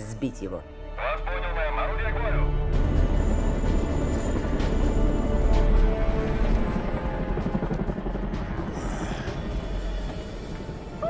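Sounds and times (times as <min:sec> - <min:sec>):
film score music: 0:00.0 - 0:11.0
helicopter rumble: 0:00.9 - 0:11.0.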